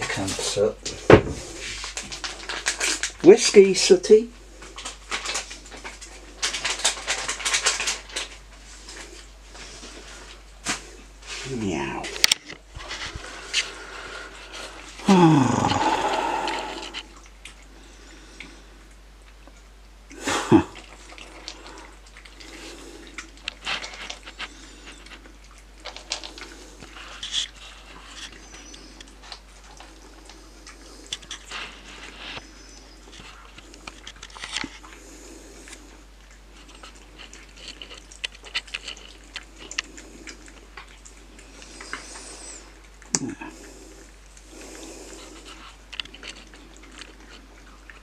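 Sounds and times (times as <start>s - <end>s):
cats chewing and licking food: 0.0s - 48.0s.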